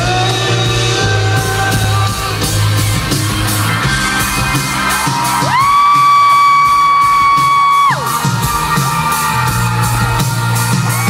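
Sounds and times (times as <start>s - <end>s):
live band music: 0.0s - 11.0s
high-pitched scream: 3.9s - 11.0s.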